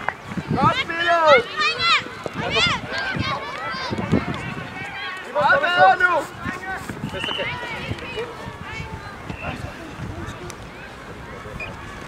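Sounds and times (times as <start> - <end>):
children shouting: 1.0 - 5.8.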